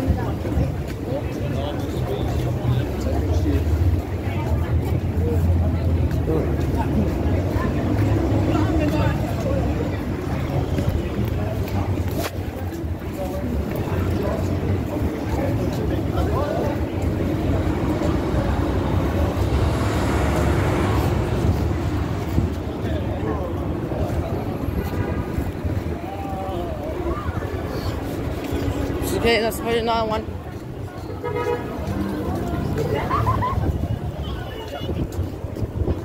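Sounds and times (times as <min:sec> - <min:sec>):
passersby talking: 0:00.0 - 0:36.0
traffic rumble: 0:00.0 - 0:36.0.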